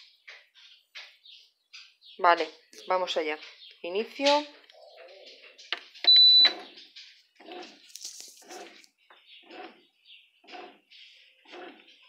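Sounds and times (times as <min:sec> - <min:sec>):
high electronic beep: 0:06.0 - 0:06.6
bread machine running in pulses: 0:09.4 - 0:09.8, 0:10.4 - 0:12.0.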